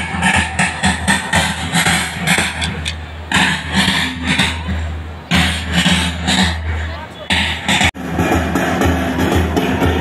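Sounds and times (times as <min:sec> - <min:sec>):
march music over loudspeakers: 0:00.0 - 0:10.0
steady drum beat: 0:00.0 - 0:10.0.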